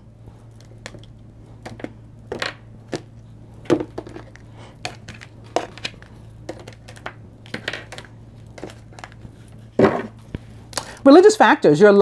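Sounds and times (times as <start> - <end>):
cards being shuffled and tapped: 0.4 - 11.0.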